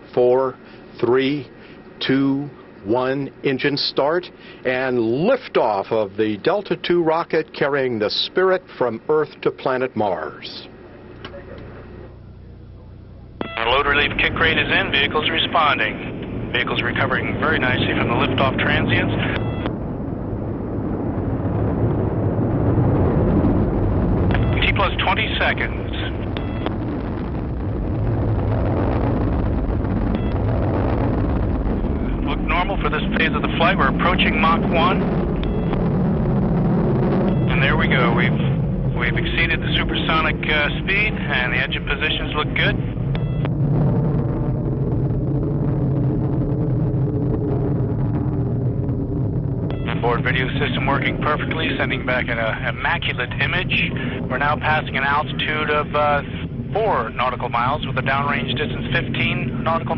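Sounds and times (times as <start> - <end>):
deep rocket rumble: 0.0 - 59.9.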